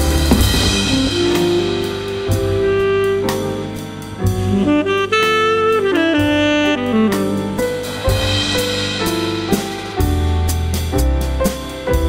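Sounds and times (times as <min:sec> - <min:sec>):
saxophone playing jazz melody: 0:00.0 - 0:09.1
backing track: 0:00.0 - 0:12.0
drum kit: 0:00.0 - 0:12.0.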